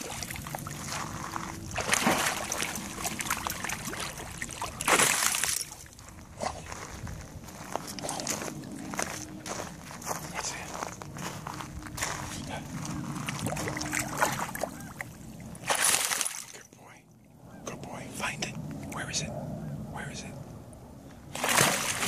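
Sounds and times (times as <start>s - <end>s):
dog splashing in water: 1.8s - 5.9s, 13.2s - 14.9s, 15.6s - 16.5s, 21.3s - 22.0s.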